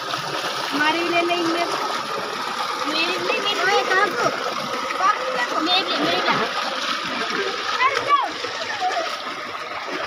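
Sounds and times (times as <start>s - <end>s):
water pouring into a tank: 0.0s - 10.0s
boys talking and calling out: 2.7s - 9.8s.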